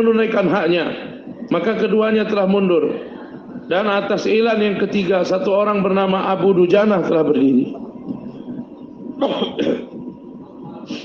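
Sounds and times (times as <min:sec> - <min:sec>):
man clearing his throat: 0:09.2 - 0:10.0.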